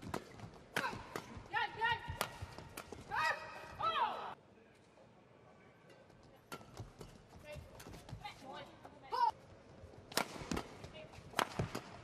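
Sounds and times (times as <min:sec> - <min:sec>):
racket striking shuttlecock: 0:02.0 - 0:03.1, 0:10.1 - 0:12.0.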